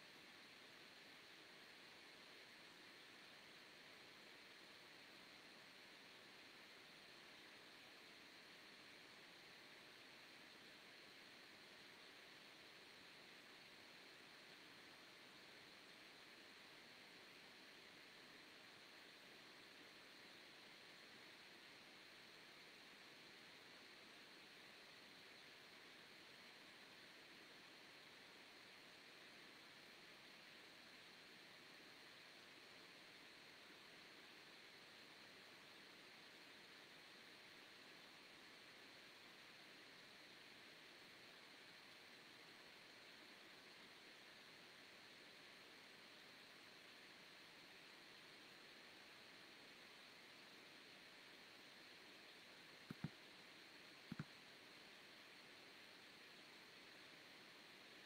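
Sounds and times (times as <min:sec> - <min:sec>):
faint background hiss: 0:00.0 - 0:58.0.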